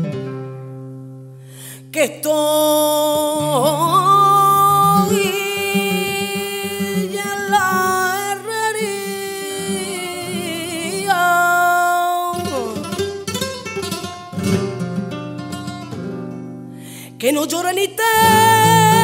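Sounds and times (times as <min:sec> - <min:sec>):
flamenco guitar: 0:00.0 - 0:19.0
woman singing flamenco: 0:01.6 - 0:16.0, 0:16.9 - 0:19.0.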